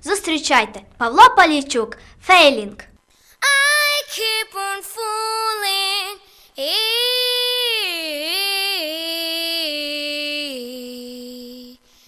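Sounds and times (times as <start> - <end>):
boy singing: 3.4 - 11.8.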